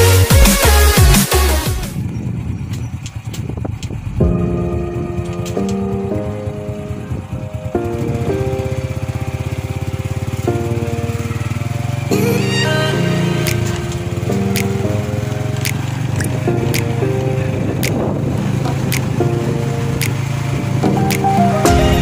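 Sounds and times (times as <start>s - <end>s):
synthesizer chords: 0.0s - 2.0s, 4.1s - 22.0s
low drone: 4.0s - 22.0s.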